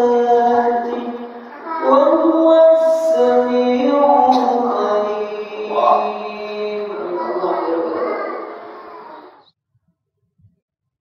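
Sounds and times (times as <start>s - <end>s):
man reciting melodically: 0.0s - 8.6s.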